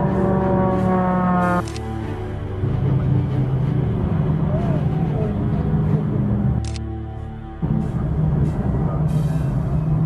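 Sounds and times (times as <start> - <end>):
propeller plane engine droning: 0.0 - 2.0
music: 0.0 - 10.0.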